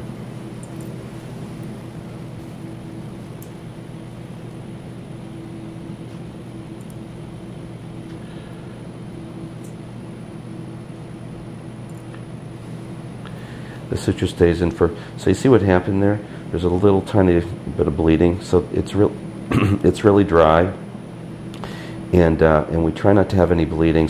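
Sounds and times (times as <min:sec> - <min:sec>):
low room hum: 0:00.0 - 0:24.0.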